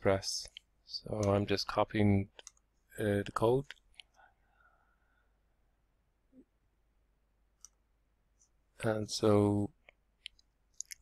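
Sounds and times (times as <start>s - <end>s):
computer mouse clicks: 2.3s - 2.6s, 7.6s - 7.8s, 9.8s - 11.0s.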